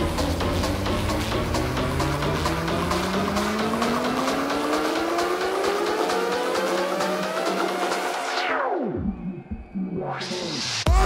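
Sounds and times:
deep bass: 0:00.0 - 0:06.0
synth tone sweeping upward: 0:00.0 - 0:10.9.

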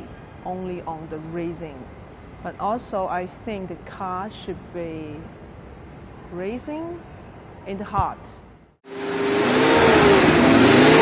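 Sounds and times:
loud rushing noise: 0:08.8 - 0:11.0
car engine revving: 0:08.9 - 0:11.0.

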